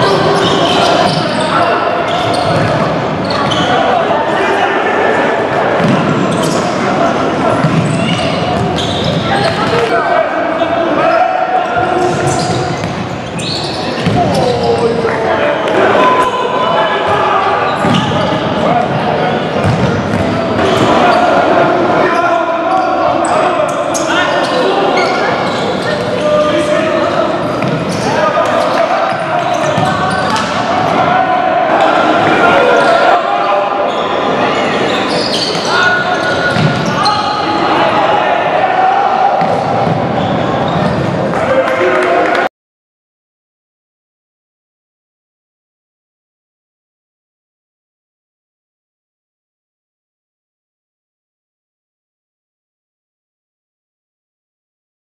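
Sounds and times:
players shouting: 0.0 - 42.5.

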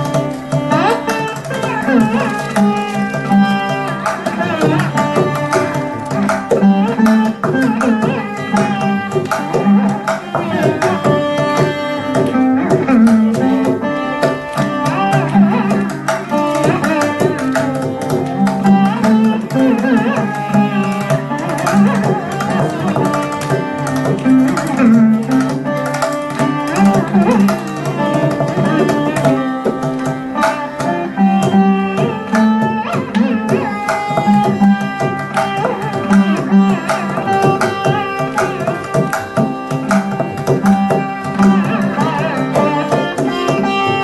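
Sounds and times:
drum strokes: 0.0 - 44.0
slide lute gliding notes: 0.0 - 44.0
violin: 0.0 - 44.0.

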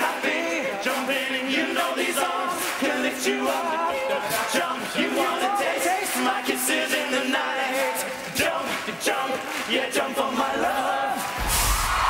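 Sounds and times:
male a cappella group singing: 0.0 - 11.5.

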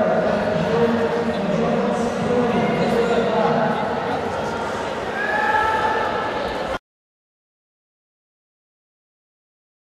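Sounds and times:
crowd voices: 0.0 - 6.8.

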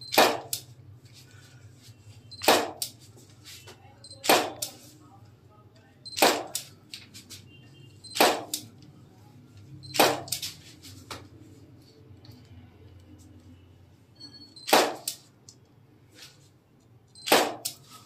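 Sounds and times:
short high beep: 14.1 - 14.7.

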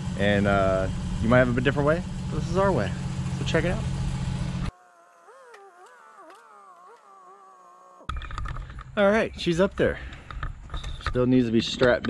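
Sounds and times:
outdoor background noise: 2.6 - 12.0.

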